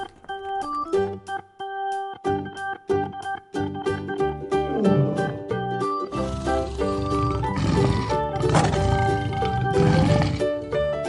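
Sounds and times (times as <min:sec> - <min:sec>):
background music: 0:00.0 - 0:11.0
lion roaring: 0:06.2 - 0:10.6.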